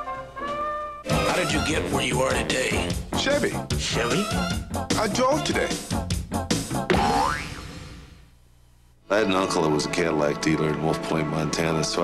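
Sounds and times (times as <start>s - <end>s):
springy boing sound effect: 6.9s - 7.6s.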